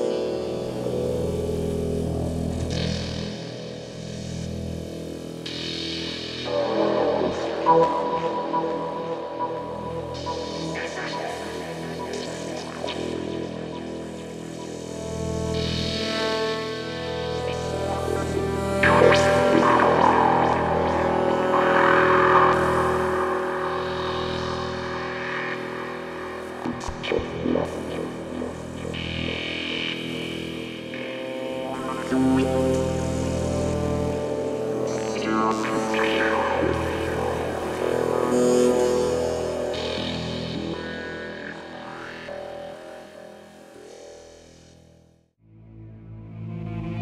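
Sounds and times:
synthesizer ambient drone: 0:00.0 - 0:47.0.

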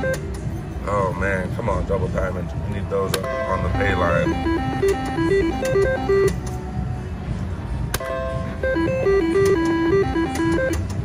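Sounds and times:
slot machine electronic tune: 0:00.0 - 0:00.3, 0:03.3 - 0:06.5, 0:08.0 - 0:11.0
casino background din: 0:00.0 - 0:06.7
slot machine reel clicks: 0:04.4 - 0:06.4, 0:09.0 - 0:11.0.

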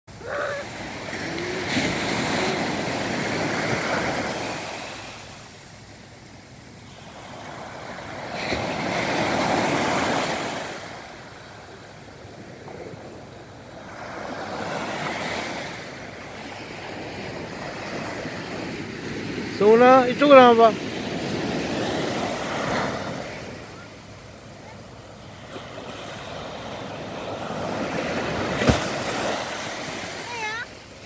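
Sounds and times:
waves washing up a beach: 0:00.1 - 0:31.0.

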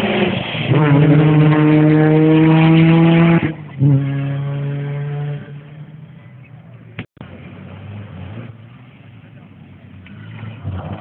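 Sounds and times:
rally car engine accelerating: 0:00.0 - 0:11.0.

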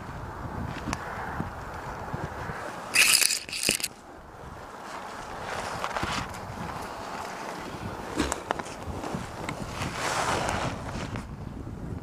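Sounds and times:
scraping against tree bark: 0:02.7 - 0:04.0.

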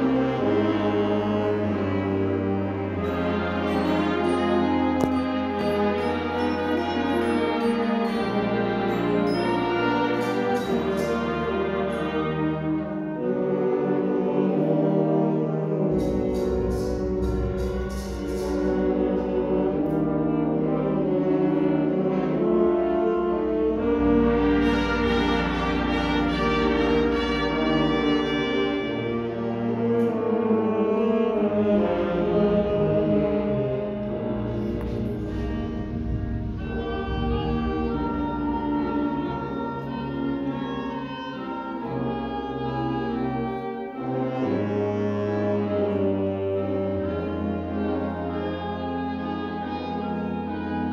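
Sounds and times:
wind band playing sustained chords: 0:00.0 - 0:50.9.

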